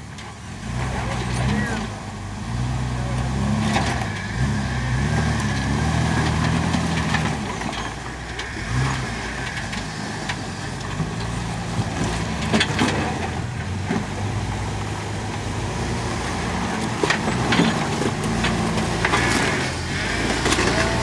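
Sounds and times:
engine running at low revs: 0.0 - 21.0.

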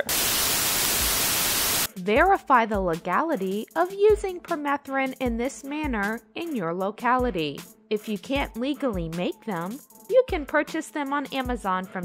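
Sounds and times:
white-noise static burst: 0.0 - 1.9.

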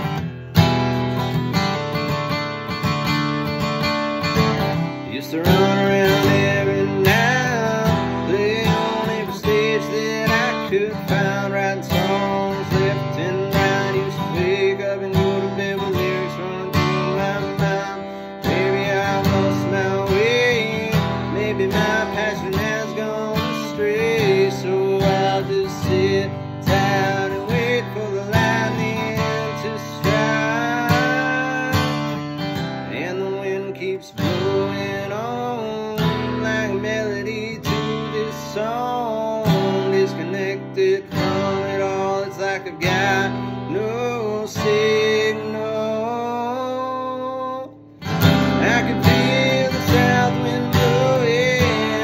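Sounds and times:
man singing: 0.0 - 0.3, 1.5 - 52.0
acoustic guitar strummed chords: 0.0 - 52.0.

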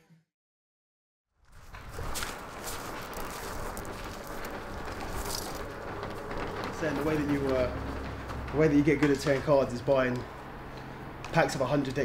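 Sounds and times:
footsteps on gravel: 1.5 - 10.6
roller-shutter garage door rolling up: 1.5 - 12.0.

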